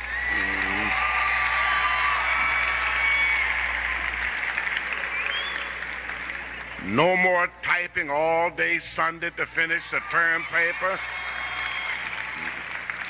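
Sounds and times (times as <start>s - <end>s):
people shouting: 0.0s - 3.3s
audience applauding and cheering: 0.0s - 8.3s, 9.0s - 13.0s.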